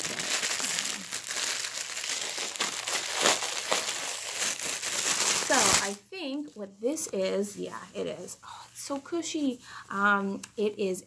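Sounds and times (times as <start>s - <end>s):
package wrapping crinkling and tearing: 0.0s - 6.0s.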